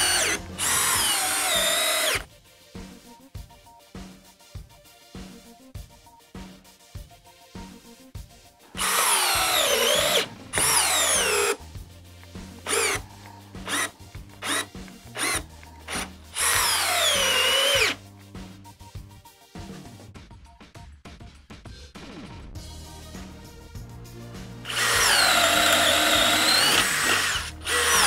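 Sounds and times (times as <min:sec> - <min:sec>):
cordless drill driving screw: 0:00.0 - 0:02.2, 0:08.8 - 0:11.6, 0:12.7 - 0:13.0, 0:13.6 - 0:18.0, 0:24.7 - 0:28.0.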